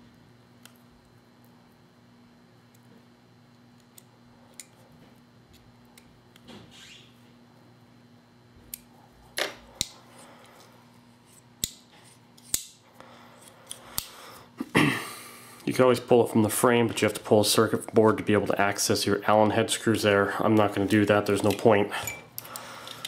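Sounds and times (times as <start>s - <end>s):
faint steady hum: 0.0s - 23.0s.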